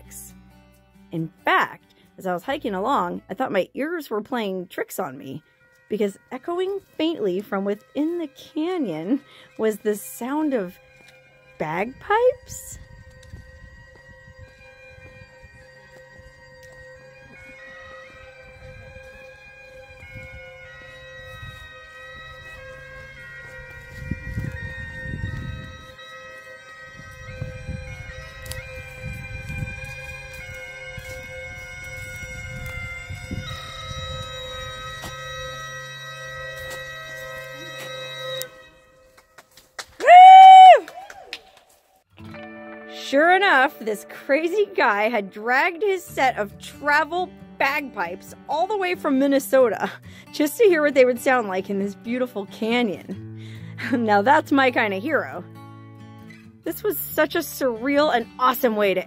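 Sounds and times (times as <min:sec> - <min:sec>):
bagpipes playing: 0:04.3 - 0:39.4, 0:42.3 - 0:56.1
loud bending tone: 0:11.7 - 0:39.0.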